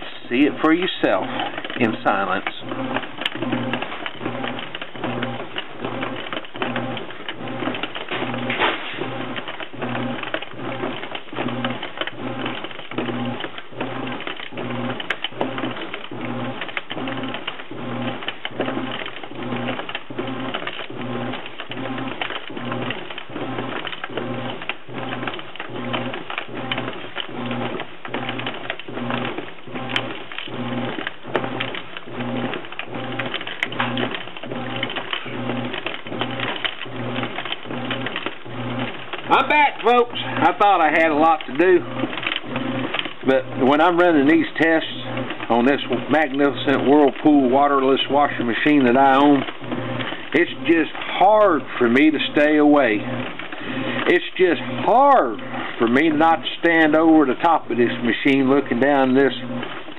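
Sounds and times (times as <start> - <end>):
washing machine motor hum pulsing: 0.0 - 59.9.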